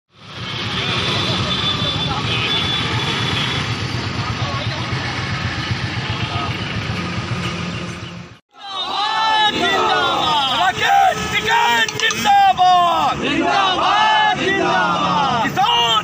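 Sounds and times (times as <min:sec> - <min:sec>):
vehicle engine rumbling: 0:00.2 - 0:08.4
people talking indistinctly: 0:08.6 - 0:16.0.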